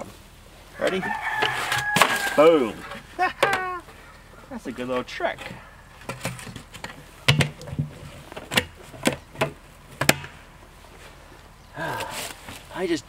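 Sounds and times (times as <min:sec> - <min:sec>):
plastic bucket knocks and snaps: 0:06.1 - 0:10.3.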